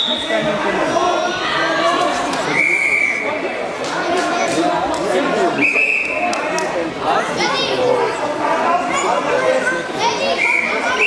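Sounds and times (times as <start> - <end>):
referee's whistle blast: 0.0 - 0.4
children's voices and chatter: 0.0 - 11.0.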